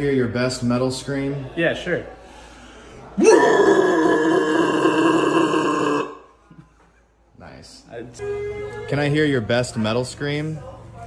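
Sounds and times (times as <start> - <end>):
man screaming metal vocals: 3.2 - 6.2.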